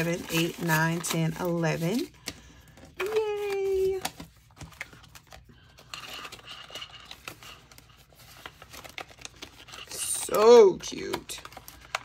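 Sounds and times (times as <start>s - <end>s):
paper bills rustling: 0.0s - 12.0s.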